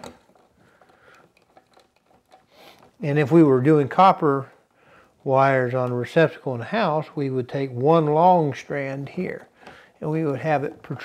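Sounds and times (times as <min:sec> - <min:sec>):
small clicks of wire handling: 0:00.0 - 0:03.4.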